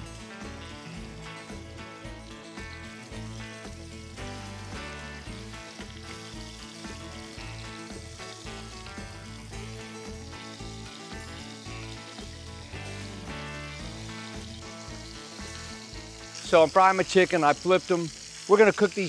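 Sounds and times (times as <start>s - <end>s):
background music with bass line: 0.0s - 18.2s
chicken sizzling in hot oil: 0.0s - 19.0s.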